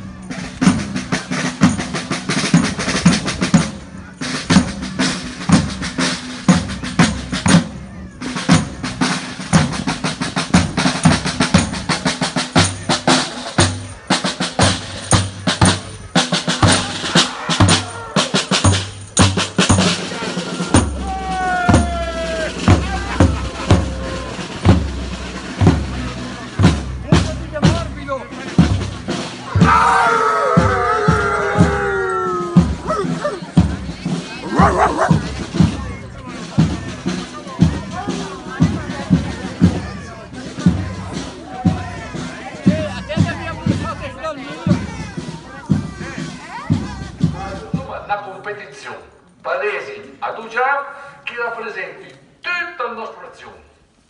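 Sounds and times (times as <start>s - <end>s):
marching band drums: 0.0s - 48.2s
crowd voices: 0.0s - 52.4s.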